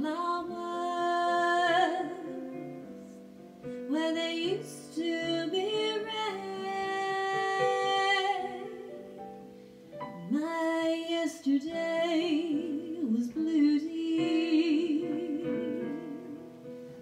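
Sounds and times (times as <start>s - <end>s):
woman singing a slow ballad: 0.0s - 2.8s, 3.8s - 9.2s, 10.1s - 16.6s.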